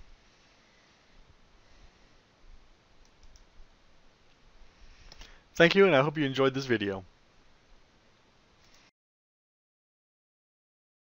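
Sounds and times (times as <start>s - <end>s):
faint clicks: 3.0s - 3.5s, 5.1s - 5.4s, 8.6s - 8.9s.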